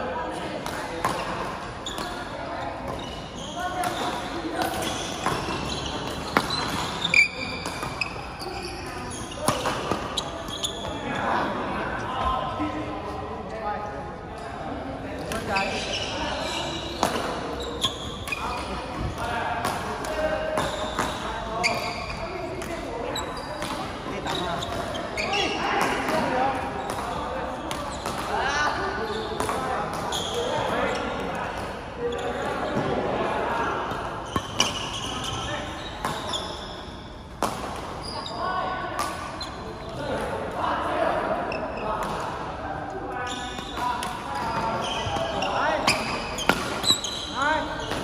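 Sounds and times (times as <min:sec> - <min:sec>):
racket hitting shuttlecock: 0:17.0 - 0:17.5, 0:37.4 - 0:38.0, 0:44.0 - 0:47.0.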